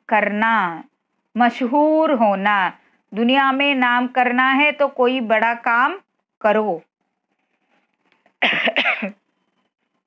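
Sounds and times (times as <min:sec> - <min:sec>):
woman coughing: 0:08.4 - 0:09.2.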